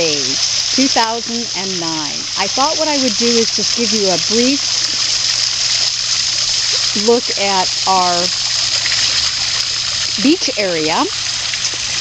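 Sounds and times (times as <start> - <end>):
waterfall rushing into pond: 0.0 - 12.0.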